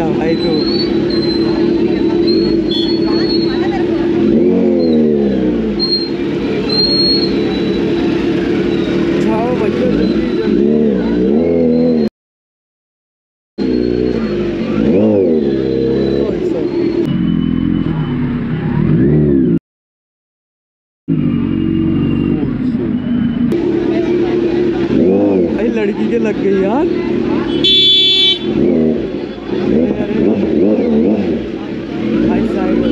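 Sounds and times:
motorcycle engine idling and revving: 0.0s - 12.1s, 13.6s - 19.6s, 21.1s - 32.9s.

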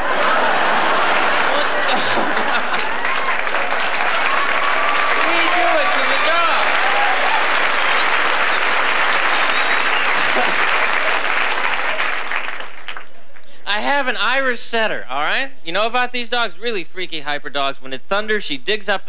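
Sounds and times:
people laughing: 0.0s - 8.6s, 9.2s - 12.2s
audience applauding: 0.0s - 13.6s.

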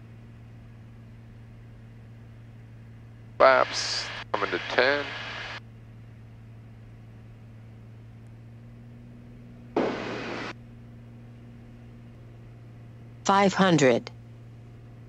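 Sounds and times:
airplane engine and propeller drone: 0.0s - 15.0s
radio hiss: 3.4s - 5.6s, 9.8s - 10.5s.

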